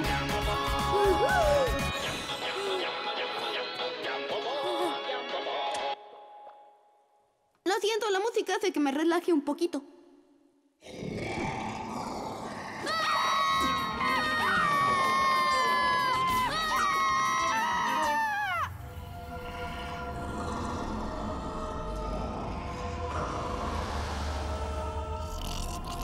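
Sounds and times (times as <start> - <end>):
eerie cartoon wailing tones: 12.4 - 26.0
low drone: 18.7 - 26.0.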